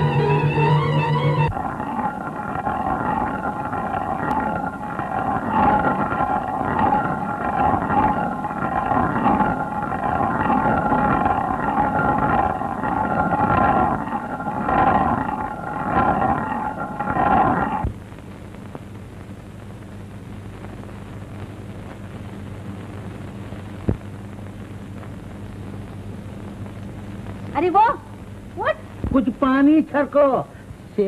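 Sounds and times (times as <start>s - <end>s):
stone hand mill grinding: 1.5s - 17.9s.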